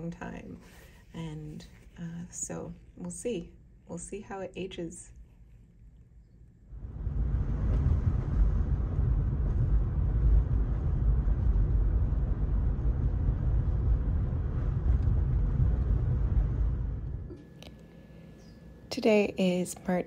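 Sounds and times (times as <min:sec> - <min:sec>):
car rumble inside cabin: 0:06.7 - 0:17.4.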